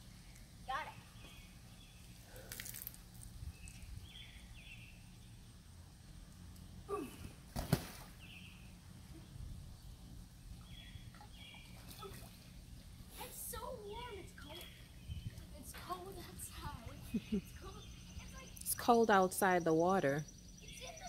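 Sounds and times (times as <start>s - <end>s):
low outdoor hum: 0.0s - 21.0s
float splashing onto water: 7.5s - 8.2s.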